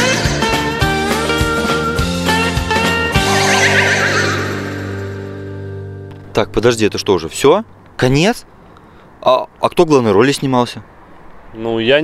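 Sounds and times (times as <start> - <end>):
high wavering cry: 3.0 - 5.4.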